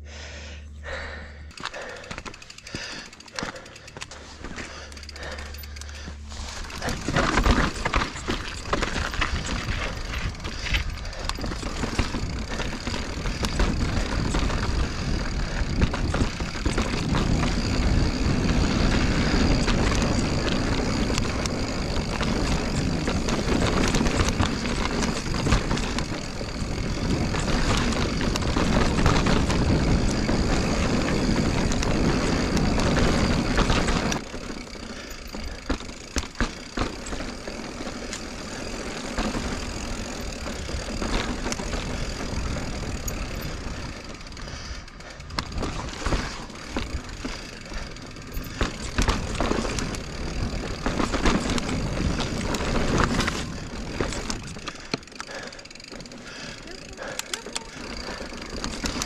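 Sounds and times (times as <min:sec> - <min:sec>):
bike rattling and knocking: 0:00.8 - 0:59.0
wind and tyre noise: 0:00.8 - 0:59.0.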